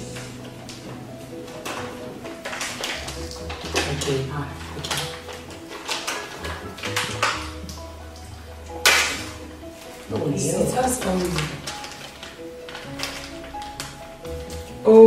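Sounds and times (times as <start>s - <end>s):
plastic packet crinkling: 0.0s - 14.8s
sharp plastic crackle: 0.0s - 14.8s
background music low notes: 0.0s - 15.0s.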